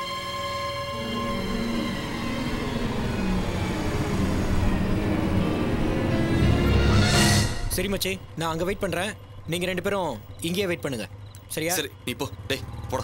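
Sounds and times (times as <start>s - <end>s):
tense background music: 0.0s - 13.0s
motorcycle engines rumbling: 7.8s - 13.0s.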